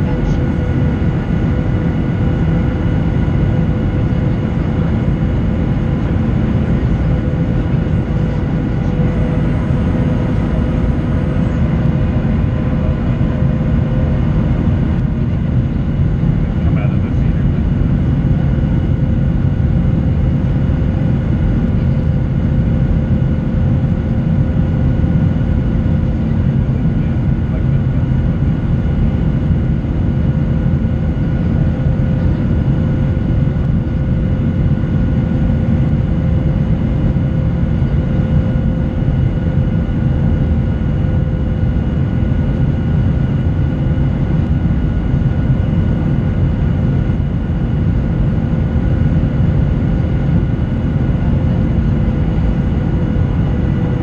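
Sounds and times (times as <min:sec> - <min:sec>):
airplane cabin engine rumble: 0:00.0 - 0:54.0.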